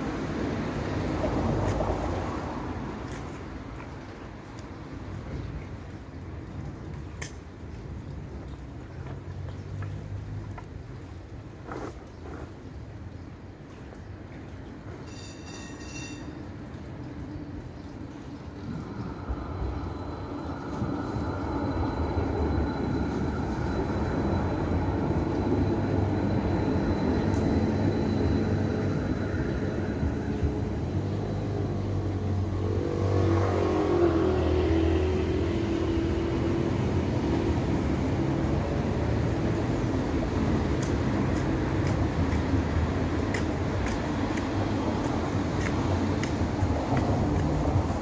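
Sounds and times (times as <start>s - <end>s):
tram electric hum and rumble: 0.0s - 48.0s
wavering high whine: 18.6s - 37.8s.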